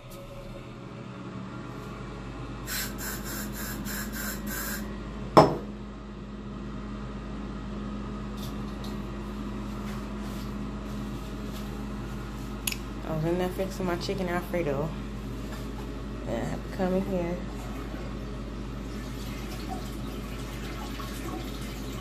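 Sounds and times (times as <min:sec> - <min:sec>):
exhaust fan humming: 0:00.0 - 0:22.0.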